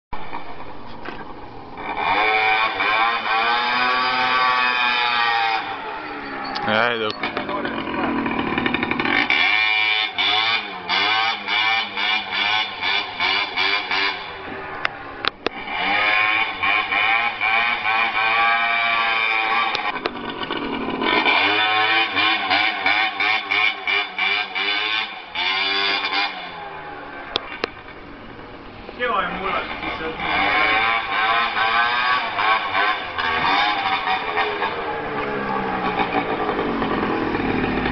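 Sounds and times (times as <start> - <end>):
scooter engine revving: 1.0 - 37.9.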